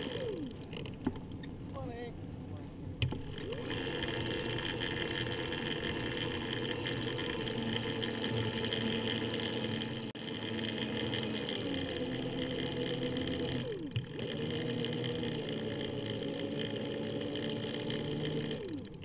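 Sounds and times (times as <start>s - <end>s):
electric motor whining: 0.0s - 1.4s, 3.0s - 19.0s.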